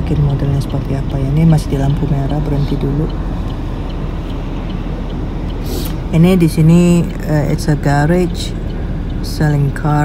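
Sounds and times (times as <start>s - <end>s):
car engine rumble: 0.0s - 10.0s
road noise: 0.0s - 10.0s
short hiss: 5.6s - 6.0s.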